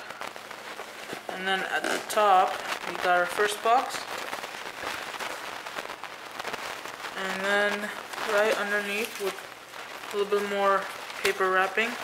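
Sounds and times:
bubble wrap crinkling and crackling: 0.0 - 12.0.

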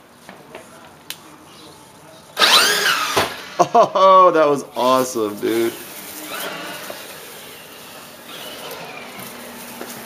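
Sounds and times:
electric motor whining: 2.4 - 3.6, 5.8 - 9.9.

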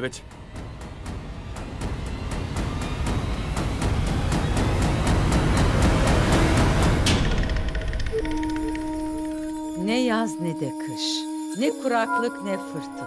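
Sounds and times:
fast even drumbeat: 0.0 - 8.6
strong drum hit: 0.2 - 8.2
deep rumble: 0.2 - 9.7.

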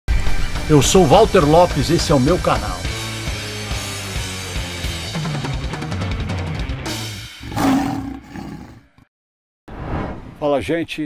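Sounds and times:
loud lion roar: 7.4 - 8.9.

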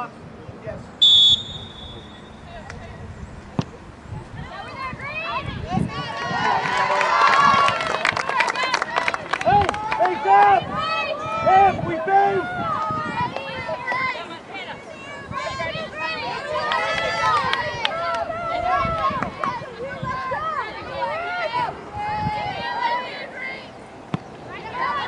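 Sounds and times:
voices shouting and calling: 4.2 - 25.0.

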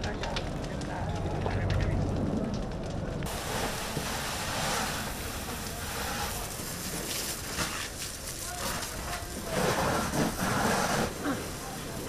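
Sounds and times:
low rumble: 0.0 - 6.6
burning wood crackling: 0.0 - 12.0
steady rushing hiss: 3.2 - 12.0
faint voices: 5.3 - 12.0.

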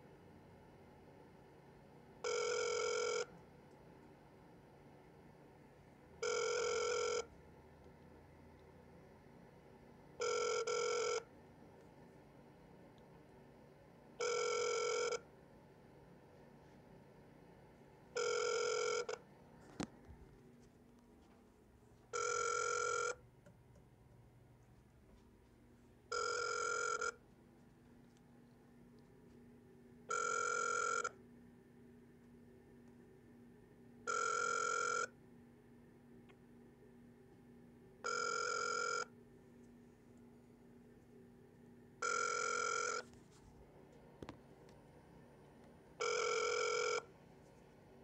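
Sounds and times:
buzzy phone ringback tone: 2.2 - 3.3, 6.2 - 7.3, 10.2 - 11.3, 14.2 - 15.3, 18.1 - 19.2, 22.1 - 23.2, 26.1 - 27.2, 30.1 - 31.2, 34.1 - 35.2, 38.0 - 39.2, 42.0 - 43.4, 46.0 - 47.1.

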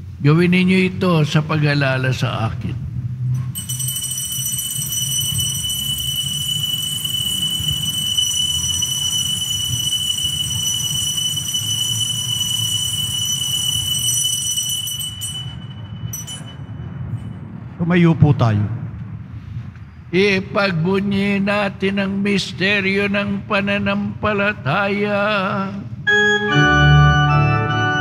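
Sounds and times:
altar bells ringing: 3.6 - 17.4.

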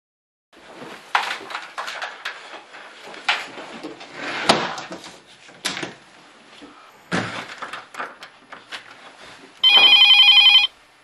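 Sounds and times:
mobile phone trilling ring: 9.6 - 10.8.

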